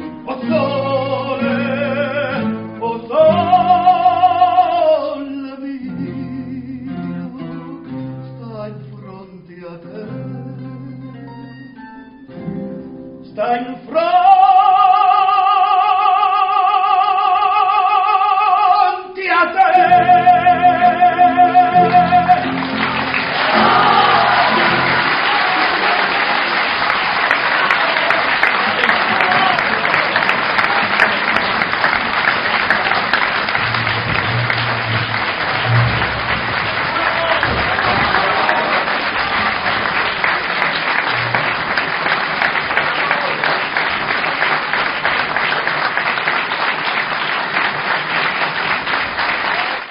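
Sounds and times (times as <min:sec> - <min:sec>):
audience applauding: 0:19.9 - 0:49.9.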